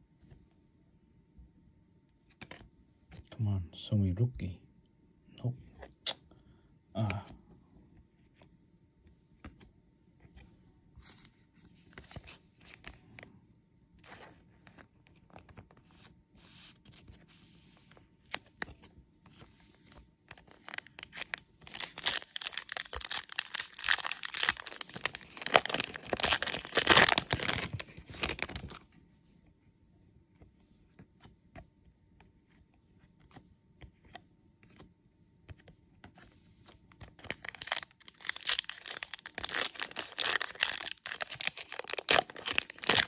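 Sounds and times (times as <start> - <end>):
cards rustling and sliding: 9.4 - 13.0, 14.0 - 28.8, 35.5 - 43.0
plastic sleeve crinkling: 20.3 - 28.8, 37.2 - 43.0.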